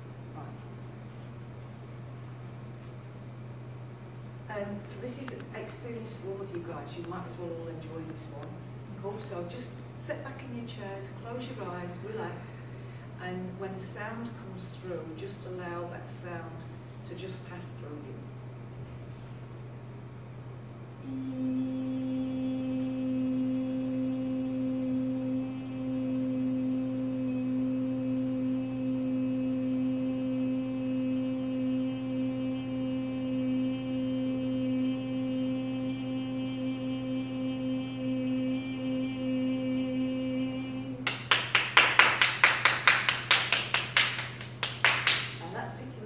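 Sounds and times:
woman toning a long note: 0:21.0 - 0:45.5
rapid hand claps: 0:41.0 - 0:45.4.

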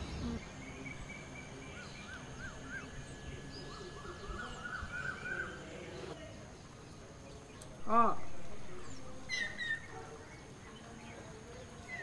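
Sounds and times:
bird chirp: 0:00.0 - 0:12.0.

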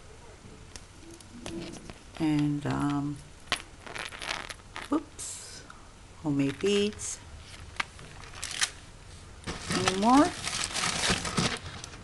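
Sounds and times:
paper and plastic sheet handling: 0:07.5 - 0:08.8, 0:09.4 - 0:12.0.

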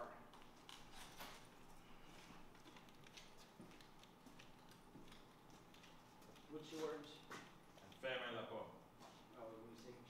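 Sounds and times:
footsteps on hard floor: 0:00.9 - 0:07.9.

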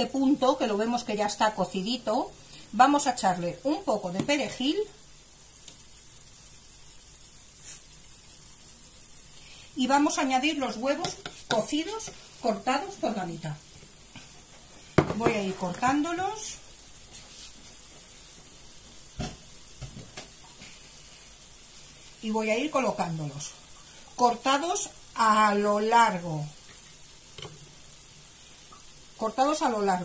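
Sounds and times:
vegetables sizzling in a frying pan: 0:00.0 - 0:30.0
spice jar shaking: 0:05.5 - 0:09.3.

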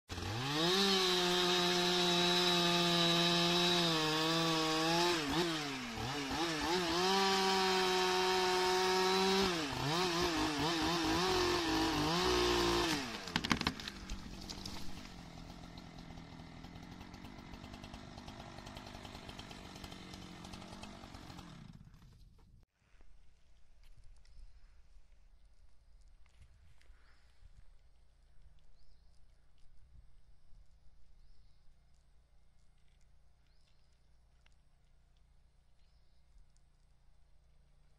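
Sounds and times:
chainsaw cutting log: 0:00.1 - 0:22.4.

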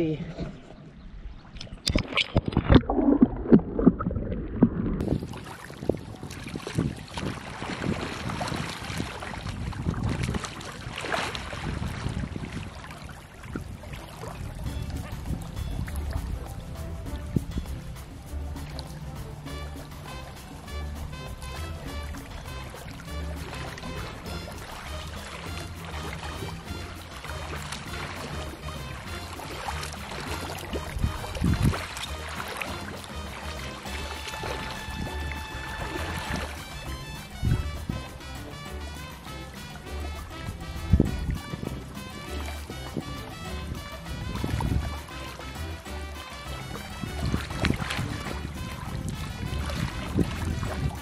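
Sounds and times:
muffled underwater splashing: 0:00.0 - 0:51.0
music with steady beat: 0:14.2 - 0:51.0.

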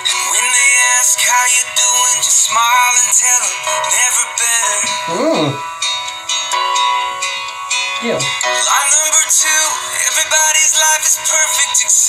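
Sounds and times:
person singing: 0:00.0 - 0:05.7, 0:08.0 - 0:12.0
sustained keyboard chords: 0:00.0 - 0:11.0.

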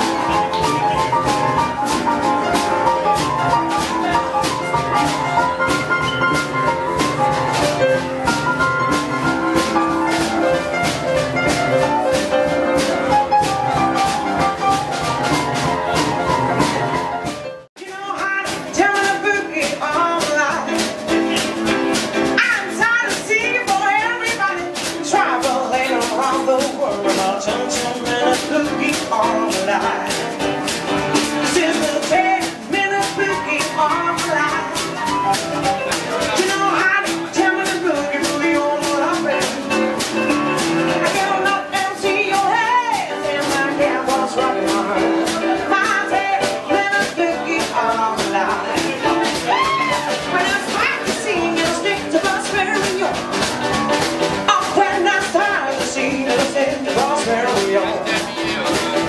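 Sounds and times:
drum kit beat on cymbals: 0:00.0 - 0:59.0
upright piano: 0:00.0 - 0:59.0
woman singing: 0:17.8 - 0:30.5, 0:31.2 - 0:35.4, 0:36.1 - 0:58.3.

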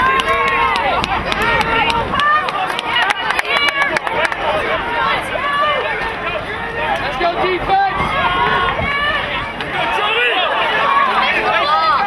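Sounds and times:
many voices calling and talking: 0:00.0 - 0:12.0.

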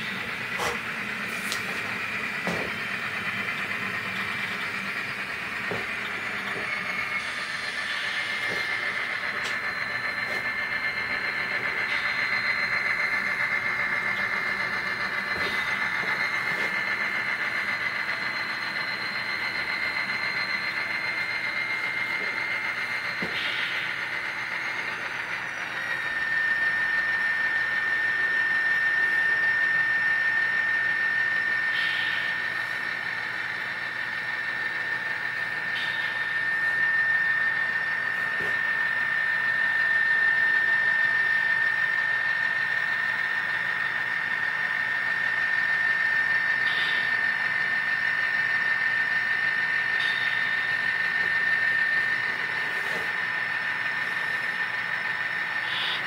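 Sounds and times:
model train motor whine: 0:00.0 - 0:56.0.

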